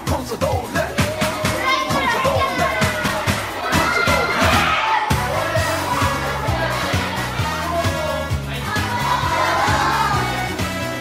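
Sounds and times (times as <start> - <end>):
pop music with steady beat: 0.0 - 11.0
children calling out and chattering: 0.8 - 10.9.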